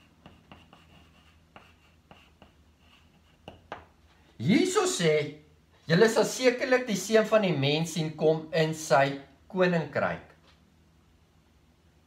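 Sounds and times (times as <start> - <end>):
chalk scratching on blackboard: 0.0 - 3.9
chalk squeaking: 0.0 - 3.9.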